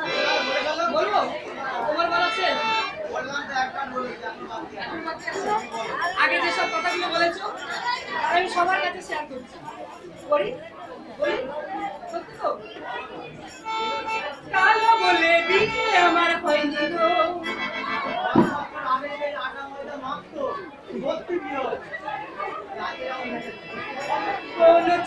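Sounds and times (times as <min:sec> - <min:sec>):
crowd chatter: 0:00.0 - 0:25.0
voices talking: 0:00.0 - 0:25.0.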